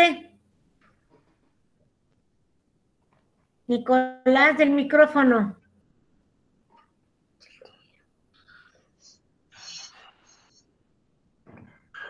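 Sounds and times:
faint whispering: 7.4 - 10.7.

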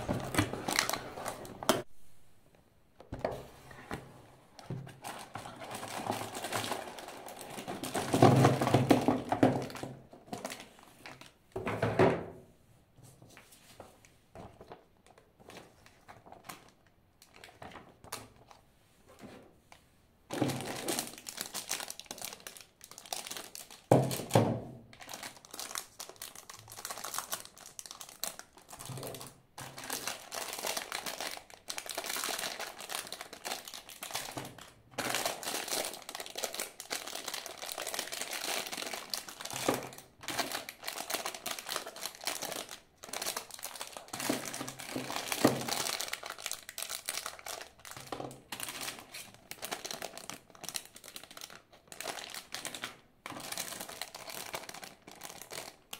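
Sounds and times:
plastic bags crinkling: 0.0 - 1.9, 4.9 - 11.4, 20.3 - 24.4, 25.0 - 55.9.

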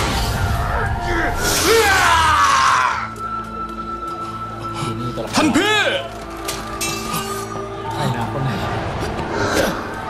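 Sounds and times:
dramatic music score: 0.0 - 10.0
man screaming: 1.5 - 3.1.

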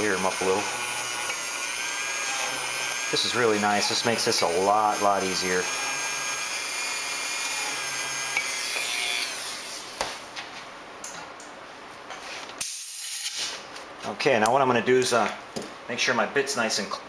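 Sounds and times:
rotary tool whining: 0.0 - 10.0.

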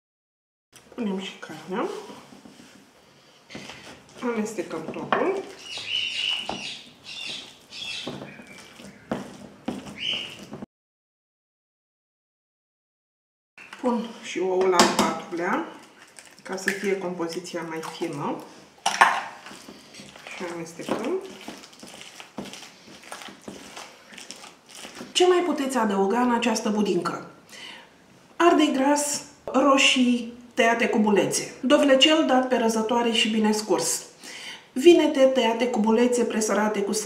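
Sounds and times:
wet squelching of stirred mash: 1.4 - 10.6, 15.2 - 25.8.

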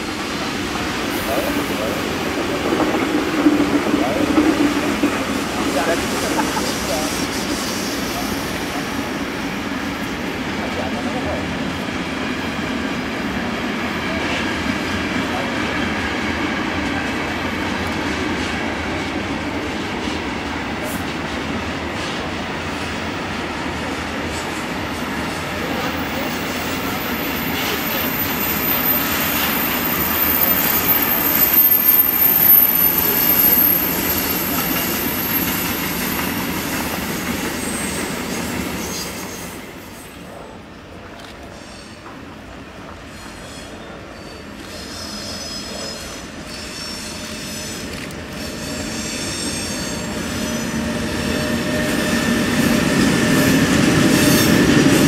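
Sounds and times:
high wheel squeal: 25.8 - 36.6, 37.2 - 40.1, 43.0 - 52.3.

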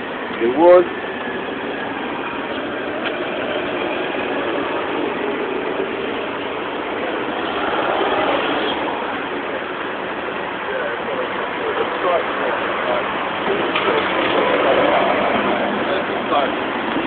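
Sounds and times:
outdoor background noise: 0.0 - 17.0
faint distant voices: 8.3 - 17.0.

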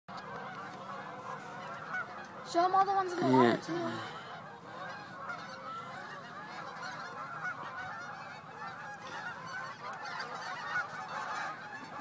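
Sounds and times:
flock of geese honking: 0.1 - 12.0.

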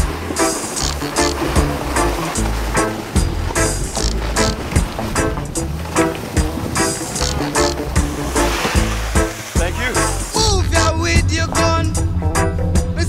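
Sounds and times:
reggae music: 0.0 - 13.0.

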